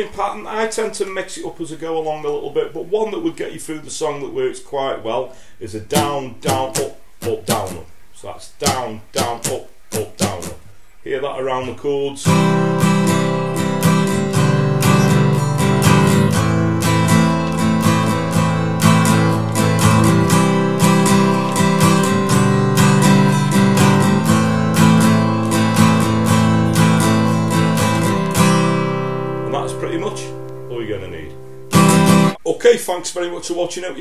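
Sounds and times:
acoustic guitar strumming: 5.9s - 7.9s, 8.6s - 10.7s, 12.2s - 32.4s.

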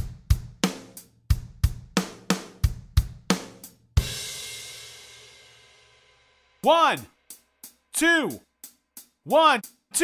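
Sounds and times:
bass and snare drum pattern: 0.0s - 4.6s, 6.6s - 10.0s.

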